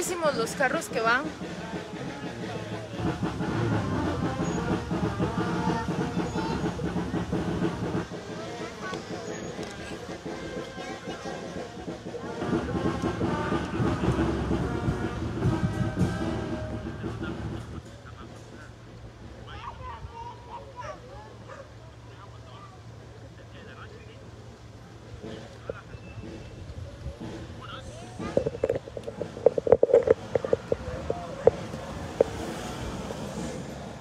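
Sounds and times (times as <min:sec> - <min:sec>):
faint voices: 0:00.0 - 0:34.0.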